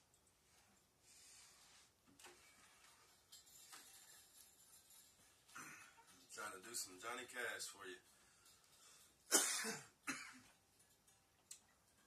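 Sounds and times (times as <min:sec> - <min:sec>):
faint rustling: 0:00.1 - 0:09.3.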